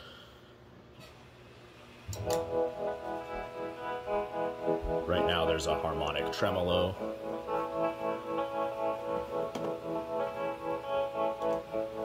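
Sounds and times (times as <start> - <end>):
electric guitar with tremolo: 2.2 - 12.0.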